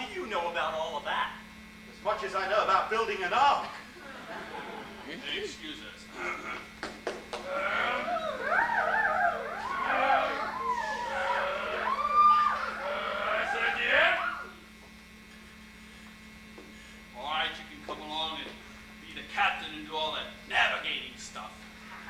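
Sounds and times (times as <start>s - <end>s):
voices wailing together: 7.4s - 14.7s.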